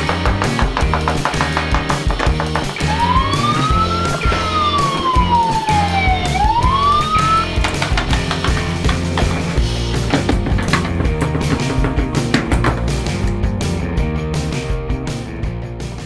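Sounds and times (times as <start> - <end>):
background music with steady beat: 0.0 - 16.0
ambulance siren wailing: 2.8 - 7.6.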